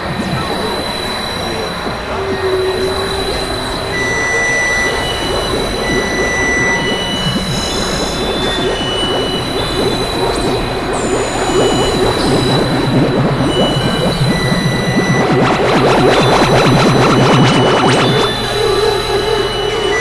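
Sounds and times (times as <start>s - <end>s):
crackling rushing noise: 0.0s - 18.6s
constant high whistle: 0.0s - 20.0s
downward-sliding high tones: 0.0s - 20.0s.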